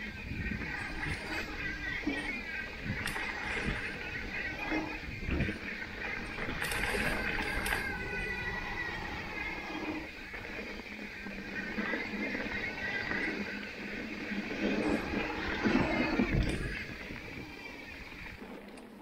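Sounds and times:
bike rattling: 0.0 - 19.0
high whine: 0.0 - 19.0
wind rumbling on microphone: 0.0 - 19.0.

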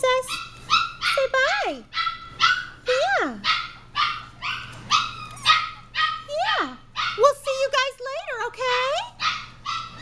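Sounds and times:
puppies yapping: 0.2 - 7.4, 8.6 - 10.0.

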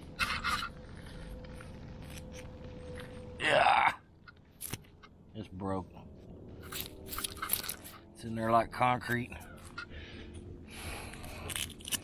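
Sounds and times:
gravel crunching against glass bottle: 0.1 - 3.3, 6.6 - 8.0, 11.2 - 12.0.

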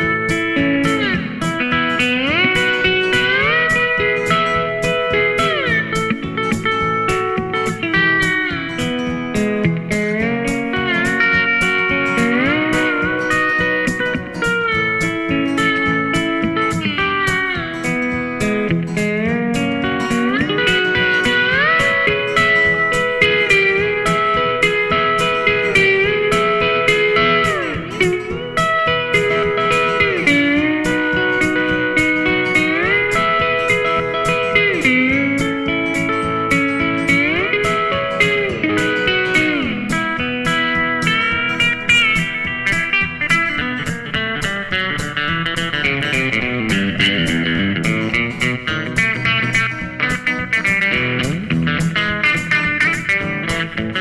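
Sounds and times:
lap steel guitar solo: 0.0 - 54.0
rhythm accompaniment: 0.0 - 54.0.

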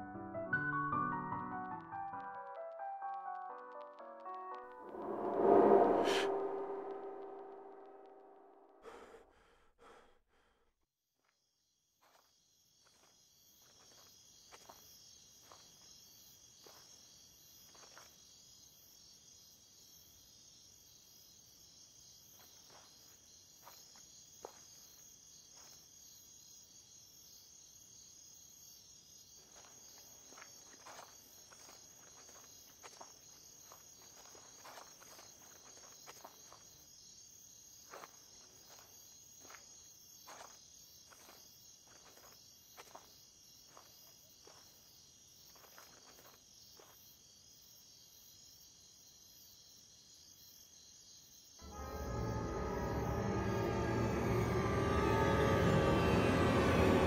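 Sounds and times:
crickets chirring: 11.8 - 56.9.

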